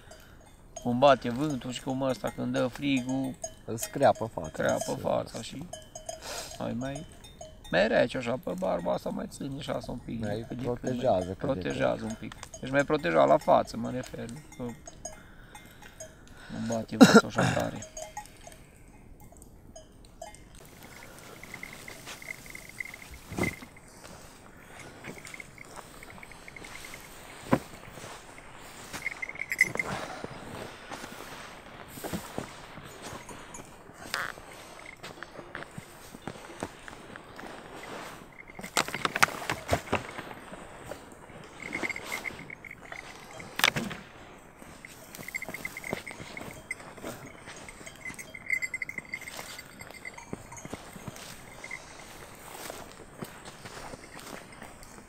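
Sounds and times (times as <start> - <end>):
coat and blankets rustling: 20.6 - 55.0
footsteps on grass: 20.6 - 55.0.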